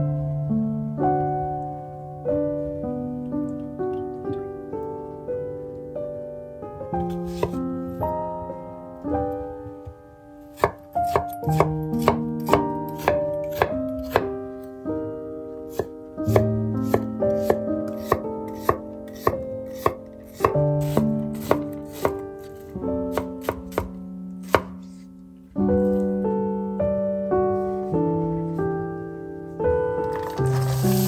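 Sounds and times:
soft piano music: 0.0s - 31.0s
knife chopping on wooden board: 7.3s - 7.6s, 10.6s - 14.3s, 15.7s - 24.8s.

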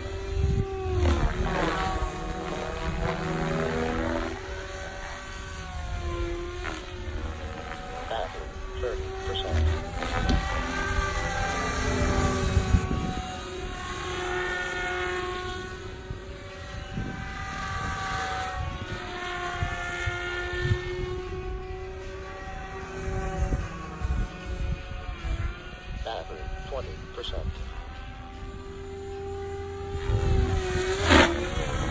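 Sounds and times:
rc helicopter motor whine: 0.0s - 31.9s.

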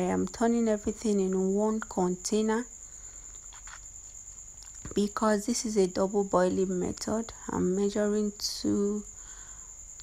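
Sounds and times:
cricket trilling: 0.0s - 10.0s.

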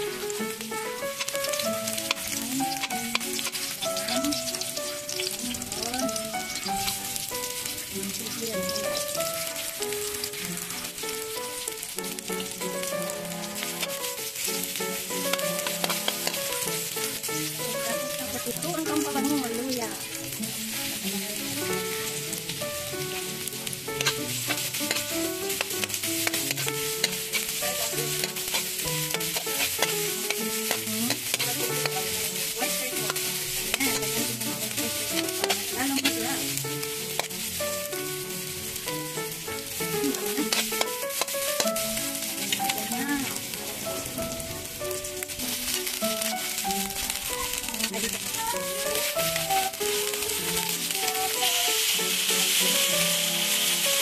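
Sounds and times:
background music: 0.0s - 54.0s
food sizzling in a wok: 0.0s - 54.0s
metal spatula scraping a pan: 1.1s - 9.7s, 12.4s - 49.3s.

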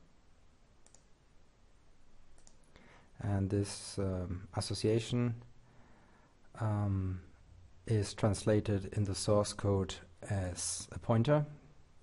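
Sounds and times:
computer mouse clicks: 0.8s - 1.1s, 2.3s - 2.8s.

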